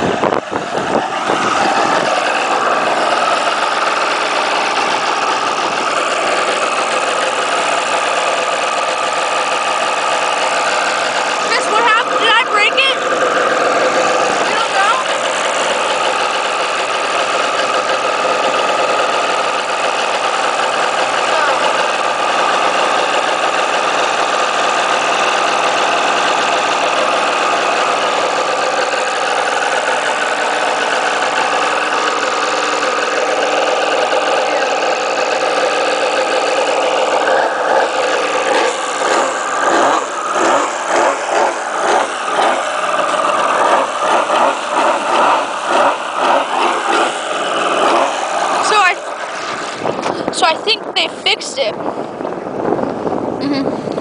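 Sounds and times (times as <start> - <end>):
engine idling and surging: 0.0 - 54.0.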